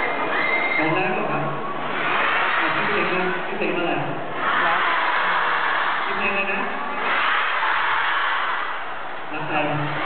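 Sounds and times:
crowd cheering and screaming: 0:00.0 - 0:10.0.

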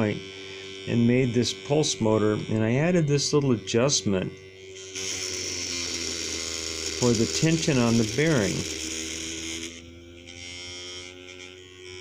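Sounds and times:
pulse motor humming: 0:00.0 - 0:12.0.

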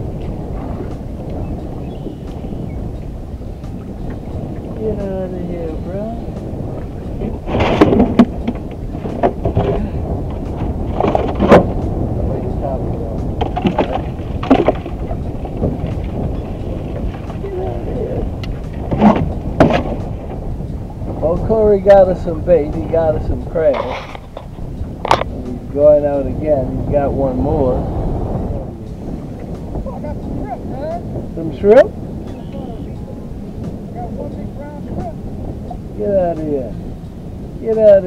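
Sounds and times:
wind rumbling on microphone: 0:00.0 - 0:38.0.

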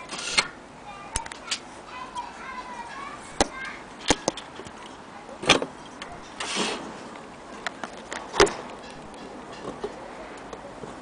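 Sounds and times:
handling clicks and knocks: 0:07.5 - 0:10.6
faint background voices: 0:09.5 - 0:11.0.

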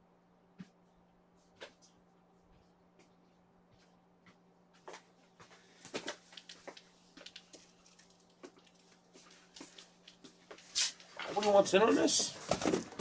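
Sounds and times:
steady low hum: 0:00.0 - 0:11.3
faint clicks and taps: 0:03.8 - 0:10.6.

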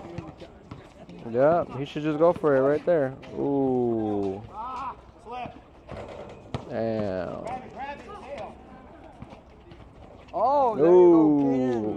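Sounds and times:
distant voices of players: 0:00.0 - 0:11.9.

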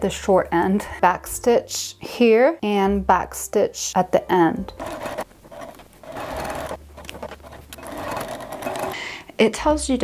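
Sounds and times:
sewing machine running: 0:04.7 - 0:09.0.

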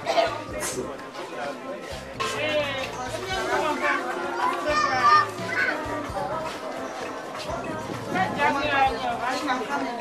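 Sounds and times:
high-pitched voices chattering: 0:00.0 - 0:10.0
music: 0:00.0 - 0:10.0.

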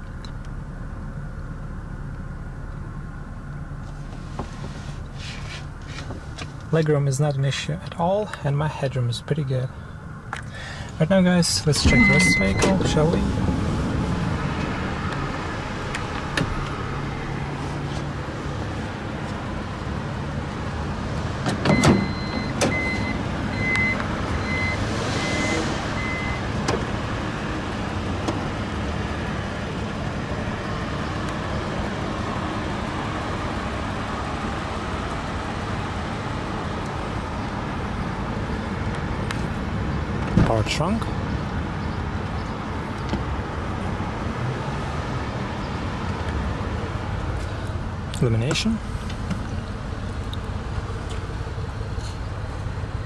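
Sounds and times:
steady low hum: 0:00.0 - 0:20.8
short high warning beeps: 0:11.8 - 0:12.9.

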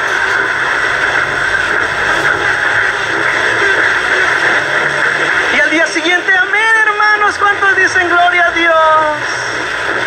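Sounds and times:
radio broadcast speech: 0:00.0 - 0:09.7
radio static hiss: 0:00.0 - 0:10.0.

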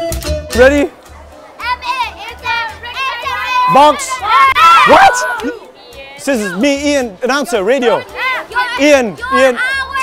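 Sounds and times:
children calling out: 0:01.0 - 0:06.6, 0:07.9 - 0:10.0.

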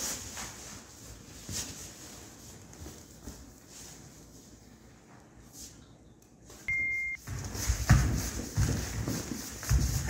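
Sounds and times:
electronic beep: 0:06.7 - 0:07.2.

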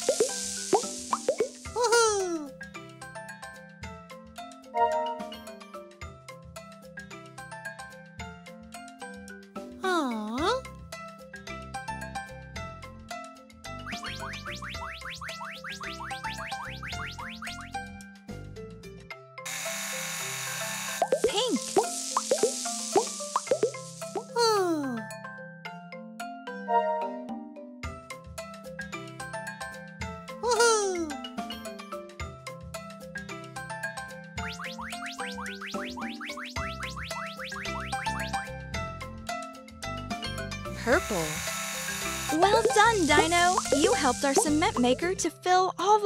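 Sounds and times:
cartoon springy pops: 0:00.0 - 0:01.6, 0:13.8 - 0:17.6, 0:21.0 - 0:24.4, 0:42.4 - 0:45.0
light children's music: 0:00.0 - 0:19.4, 0:21.0 - 0:46.0.

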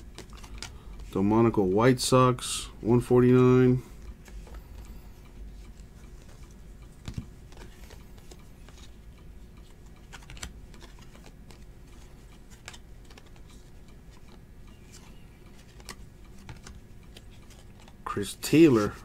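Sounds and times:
trading cards clicking and snapping: 0:00.0 - 0:01.1, 0:07.0 - 0:09.0, 0:09.6 - 0:19.0.

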